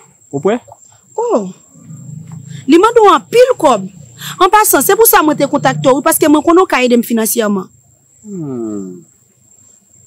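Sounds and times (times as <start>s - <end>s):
crickets trilling: 0.0s - 10.0s
person humming: 8.3s - 9.0s.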